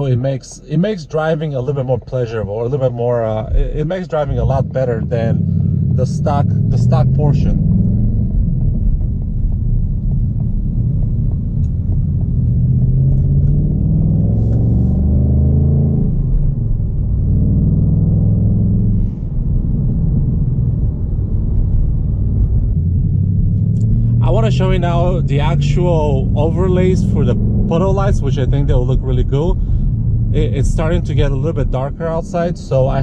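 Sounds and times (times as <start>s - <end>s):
car engine while driving: 0.0s - 33.0s.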